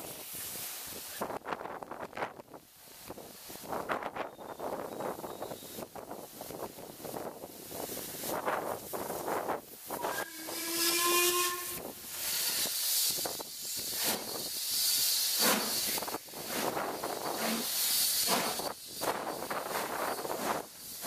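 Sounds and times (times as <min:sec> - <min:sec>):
steam hissing: 0:00.0 - 0:21.0
moving train rumble: 0:03.0 - 0:21.0
steam locomotive whistle: 0:09.9 - 0:12.0.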